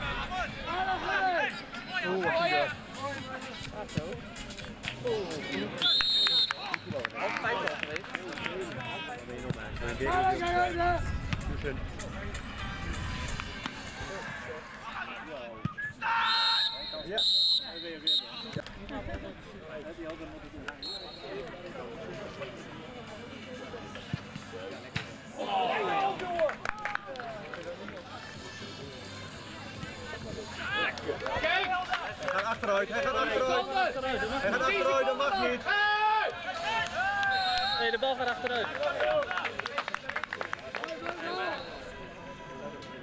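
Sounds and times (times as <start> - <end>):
spectators' voices and shouts: 0.0 - 43.0
referee's whistle blasts: 5.8 - 6.6, 15.7 - 18.6, 20.8 - 21.3, 37.2 - 38.0.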